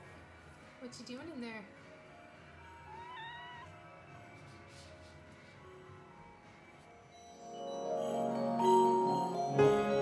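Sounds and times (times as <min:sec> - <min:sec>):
cat meowing: 0:02.9 - 0:03.8.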